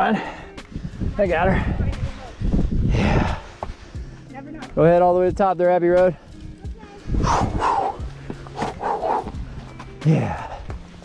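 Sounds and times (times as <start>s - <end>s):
person breathing hard: 2.8s - 4.2s, 7.1s - 10.8s
hands and shoes scuffing on rock: 3.6s - 3.9s, 8.0s - 10.0s.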